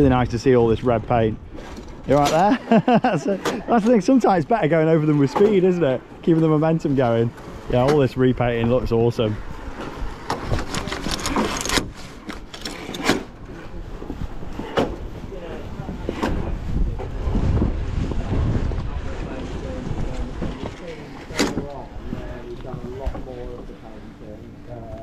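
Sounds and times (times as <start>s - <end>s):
wind rumble on microphone: 0.0s - 2.3s, 6.8s - 25.0s.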